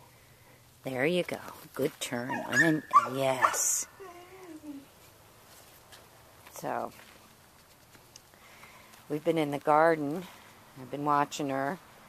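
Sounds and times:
dog whining: 0:02.3 - 0:04.9.

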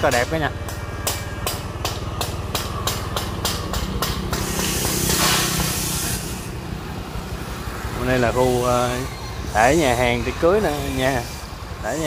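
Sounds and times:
broad rush of noise: 0:00.0 - 0:12.0
vehicle engine running: 0:00.0 - 0:12.0.

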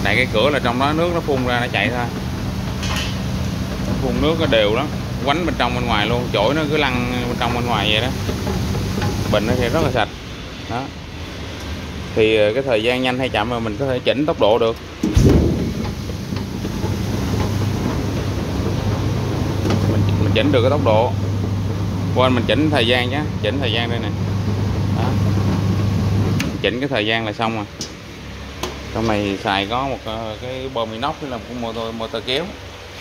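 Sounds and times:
water spraying: 0:00.0 - 0:10.2, 0:15.0 - 0:26.7
machine motor hum: 0:00.0 - 0:12.5, 0:13.2 - 0:33.0.

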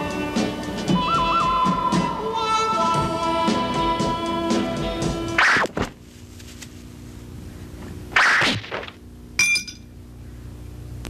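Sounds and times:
low steady hum: 0:00.0 - 0:11.0
sword blades clinking: 0:09.4 - 0:09.9.

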